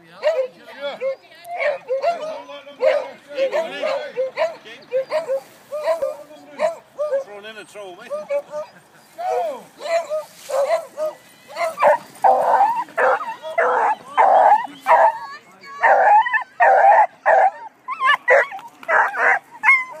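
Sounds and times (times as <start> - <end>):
dogs barking and baying: 0.2 - 20.0.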